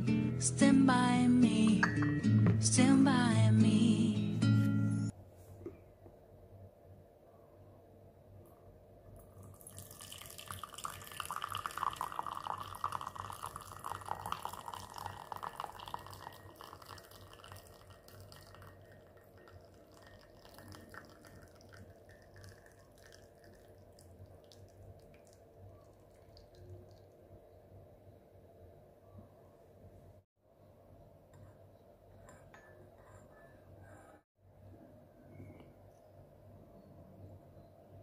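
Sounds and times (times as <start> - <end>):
coffee pouring into a cup: 9.2 - 27.5.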